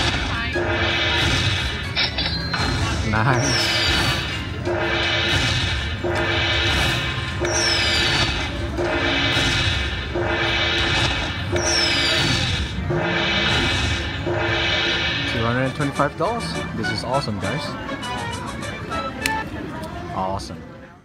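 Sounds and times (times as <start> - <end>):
slot machine electronic jingle: 0.0 - 19.0.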